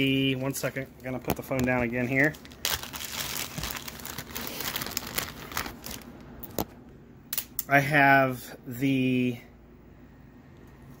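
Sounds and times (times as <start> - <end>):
rustling and crinkling: 0.3 - 6.8.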